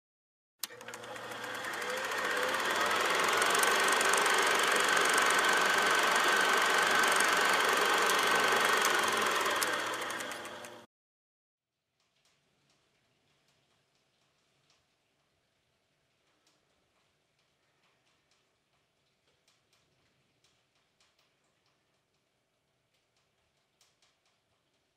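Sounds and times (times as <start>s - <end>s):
noisy texture of rapid clicks: 0.6s - 10.9s, 12.0s - 24.9s.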